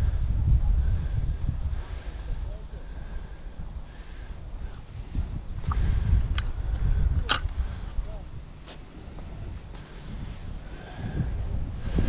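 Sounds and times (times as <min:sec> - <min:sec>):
wind rumbling on microphone: 0:00.0 - 0:12.0
sharp clicks of tackle parts: 0:05.6 - 0:06.6, 0:07.2 - 0:07.6.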